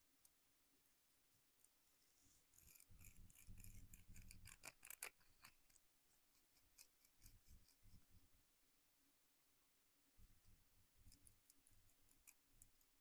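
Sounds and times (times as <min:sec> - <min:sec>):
massage tool scratchy clicks: 0:02.5 - 0:07.9.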